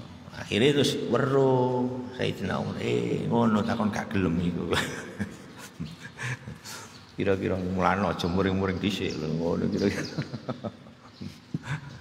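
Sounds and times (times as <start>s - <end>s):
man speaking: 0.3s - 5.2s, 7.2s - 10.2s
man chuckling: 4.7s - 6.9s, 9.8s - 12.0s.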